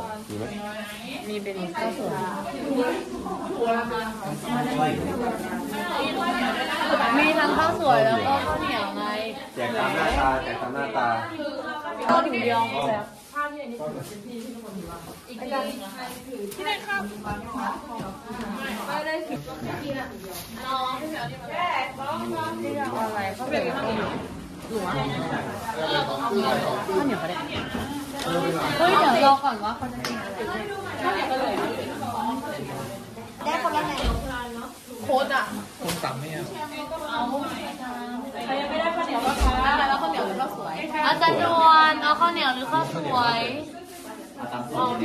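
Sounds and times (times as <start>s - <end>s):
group of people talking at once: 0.0s - 45.0s
overlapping chatter of voices: 0.0s - 45.0s.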